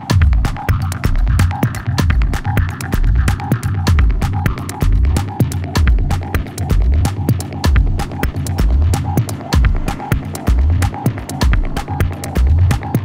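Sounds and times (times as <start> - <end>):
techno music: 0.0 - 13.0.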